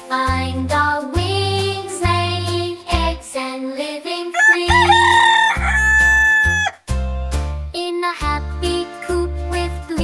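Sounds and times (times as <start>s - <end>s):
children's song instrumental: 0.0s - 10.0s
rooster crowing: 4.4s - 6.8s.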